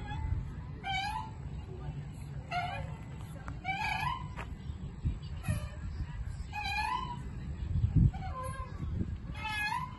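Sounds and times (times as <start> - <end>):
swing chains squeaking: 0.0 - 9.9.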